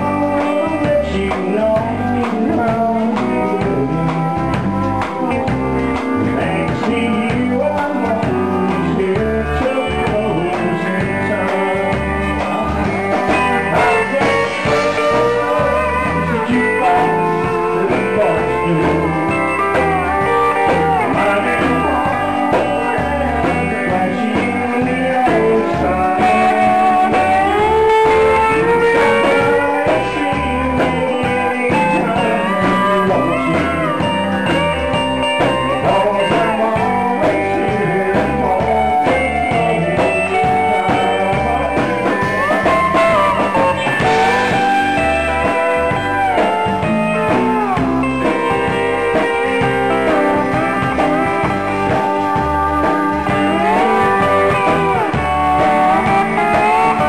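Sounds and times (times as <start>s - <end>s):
country band playing a shuffle: 0.0s - 57.0s
pedal steel guitar lead lines: 0.0s - 57.0s.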